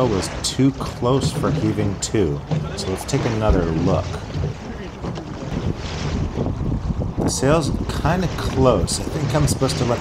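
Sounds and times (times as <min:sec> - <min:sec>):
water rushing along hull: 0:00.0 - 0:10.0
wind buffeting microphone: 0:00.0 - 0:10.0.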